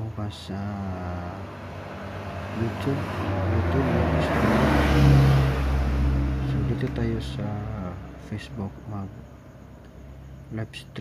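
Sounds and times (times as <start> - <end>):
vehicle engine: 0.1 - 10.6.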